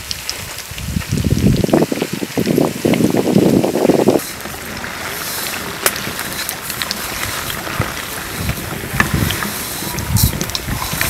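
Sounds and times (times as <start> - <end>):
oil sizzling: 0.0 - 11.0.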